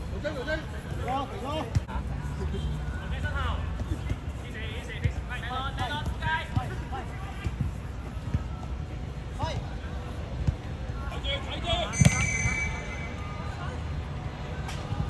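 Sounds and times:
football being kicked: 12.0 - 12.5.

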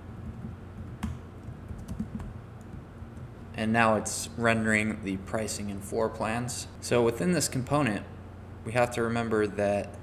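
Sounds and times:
low steady hum: 0.0 - 10.0
computer keyboard keystrokes: 0.2 - 3.3.

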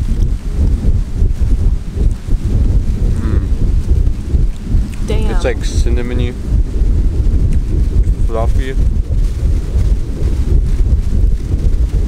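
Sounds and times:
wind buffeting microphone: 0.0 - 12.0
faint voice: 5.0 - 5.8.

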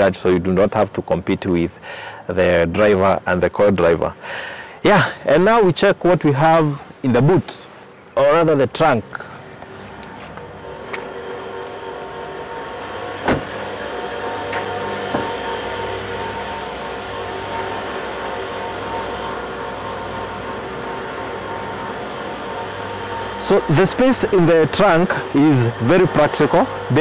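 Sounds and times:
steady mechanical hum: 0.0 - 27.0.

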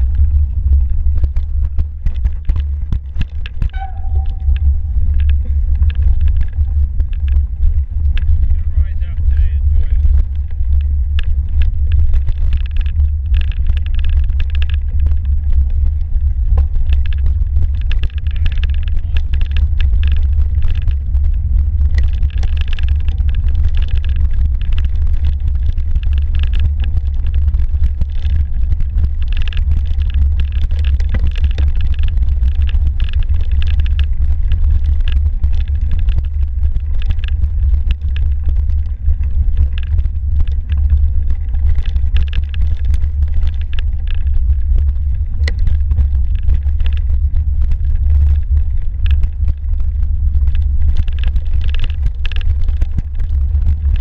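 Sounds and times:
bike rolling over trail: 0.0 - 54.0
wind and trail vibration rumble: 0.0 - 54.0.

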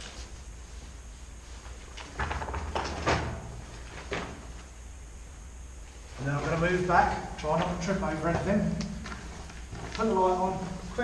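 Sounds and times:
low steady hum: 0.0 - 11.0
scuffs and knocks: 6.2 - 10.8.

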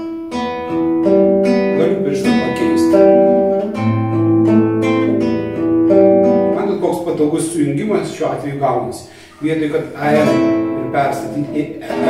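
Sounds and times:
classical guitar fingerpicked arpeggio: 0.0 - 7.3, 10.0 - 12.0.

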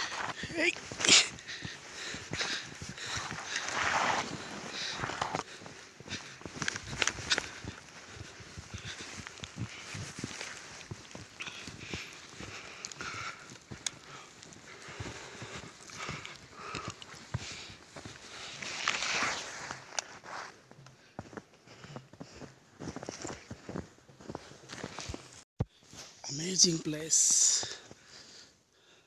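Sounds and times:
footsteps crunching through snow: 0.0 - 26.6.

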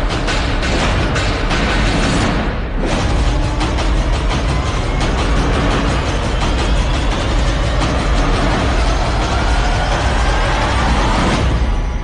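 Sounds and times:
loud background music: 0.0 - 12.0.

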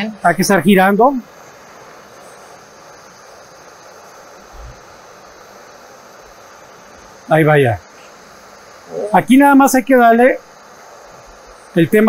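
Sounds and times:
gas torch hissing: 0.0 - 12.0.

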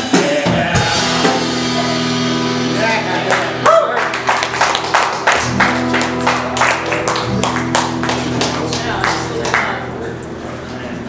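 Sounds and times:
drum and cymbal strokes: 0.0 - 3.1
strummed acoustic guitar chords: 0.0 - 11.0.

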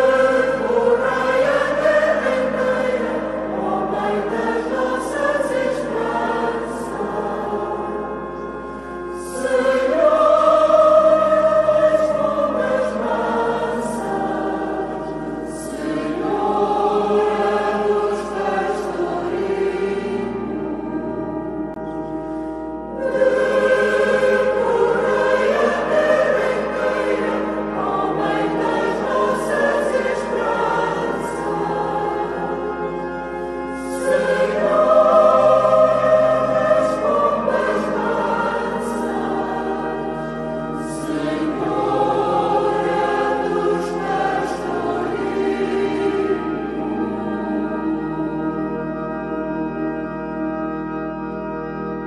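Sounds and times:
choir singing: 0.0 - 52.0.

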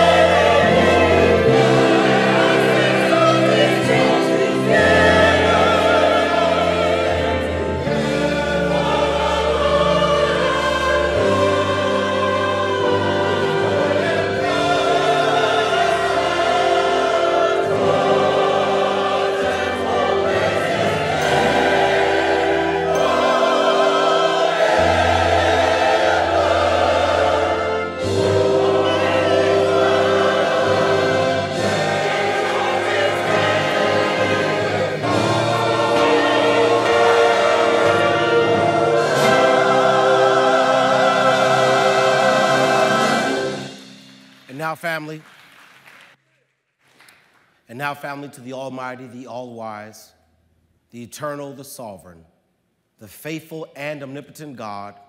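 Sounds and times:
instrumental backing: 0.0 - 45.1
gospel choir singing: 0.0 - 45.2.

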